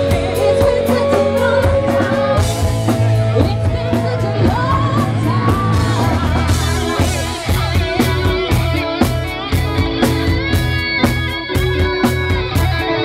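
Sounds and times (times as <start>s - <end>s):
woman singing: 0.0s - 9.1s
live rock band playing: 0.0s - 13.0s
drum beat: 1.8s - 12.9s.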